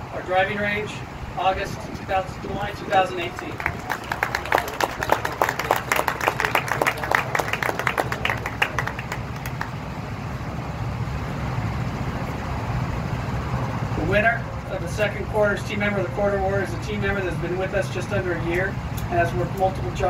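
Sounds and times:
low engine rumble: 0.0s - 20.0s
small group applauding: 3.2s - 9.9s.

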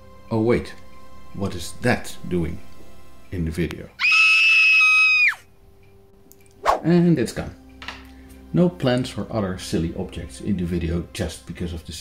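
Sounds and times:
cartoon rat screaming: 4.0s - 5.4s.

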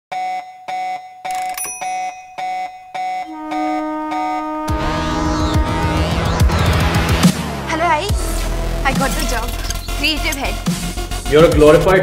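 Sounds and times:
alarm clock beeping: 1.2s - 3.6s
sustained musical tones: 1.3s - 11.3s.

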